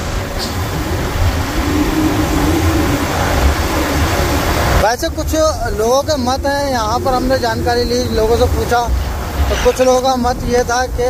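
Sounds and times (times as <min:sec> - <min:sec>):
motorcycle engine hum: 0:00.0 - 0:11.0
wind buffeting microphone: 0:00.0 - 0:11.0.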